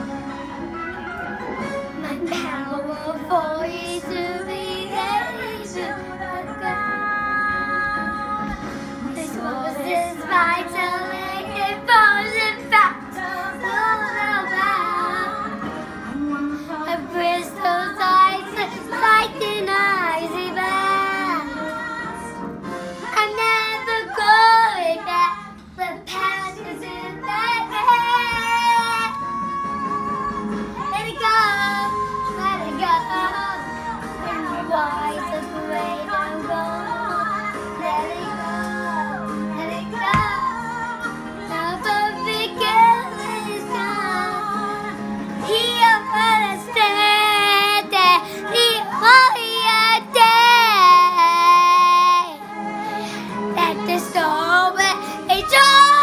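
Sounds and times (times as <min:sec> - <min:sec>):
girl singing: 0:02.0 - 0:22.4, 0:23.0 - 0:56.0.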